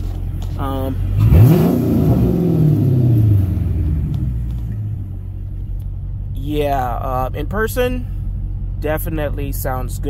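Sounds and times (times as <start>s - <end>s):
car engine revving from idle: 0.0s - 6.4s.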